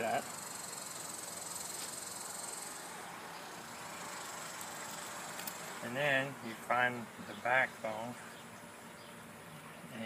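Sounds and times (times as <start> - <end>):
insects chirring: 0.0 - 5.9.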